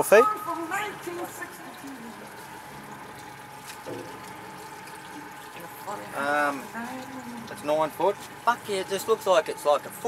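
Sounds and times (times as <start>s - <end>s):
water lapping against boat hull: 0.2s - 10.0s.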